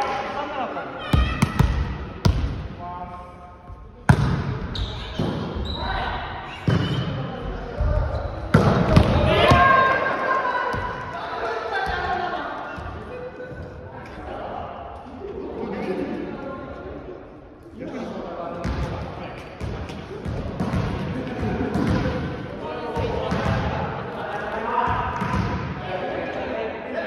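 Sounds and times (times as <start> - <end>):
players shouting: 8.6 - 12.5.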